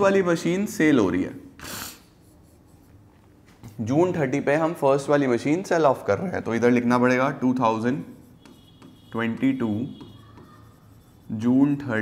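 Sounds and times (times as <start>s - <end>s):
pen scratching on a board: 7.9s - 12.0s.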